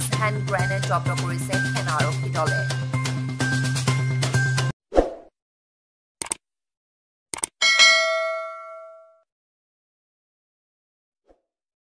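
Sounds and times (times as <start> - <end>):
notification bell ding: 7.6 - 9.2.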